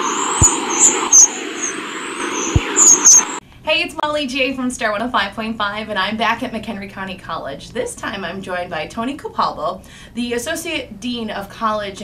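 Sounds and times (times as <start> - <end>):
noisy intro sting with chirps: 0.0 - 3.4
woman speaking: 3.6 - 12.0.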